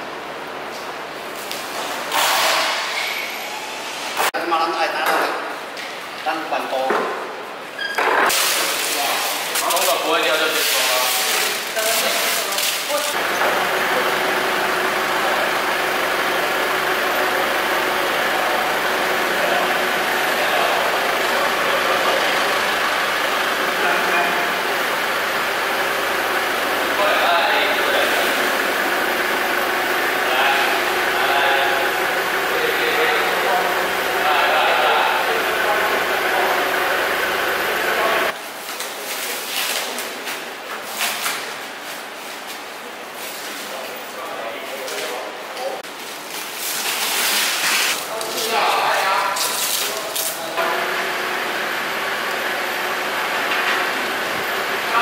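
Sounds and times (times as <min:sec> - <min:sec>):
people talking: 0:04.4 - 0:05.4, 0:08.8 - 0:14.2, 0:19.2 - 0:22.8, 0:23.7 - 0:24.6, 0:27.0 - 0:28.5, 0:30.2 - 0:40.2, 0:43.6 - 0:45.9, 0:48.0 - 0:51.0
forklift engine running: 0:13.1 - 0:38.4, 0:50.4 - 0:55.0.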